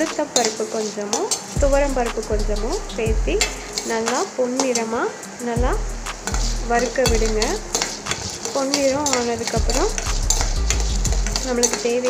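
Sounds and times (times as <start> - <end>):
spoon scraping steel pan: 0.0 - 5.4, 6.1 - 12.0
lentils sizzling in oil: 0.0 - 12.0
spoon squealing against steel: 6.3 - 12.0.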